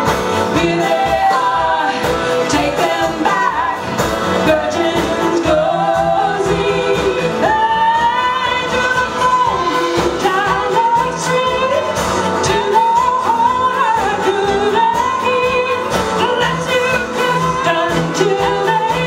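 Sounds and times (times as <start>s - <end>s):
acoustic guitar: 0.0s - 19.0s
woman singing: 0.0s - 19.0s.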